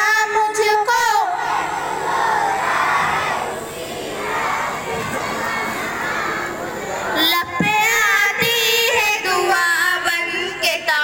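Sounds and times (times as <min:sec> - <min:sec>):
children shouting and cheering: 0:01.0 - 0:07.4
children singing: 0:01.4 - 0:08.4.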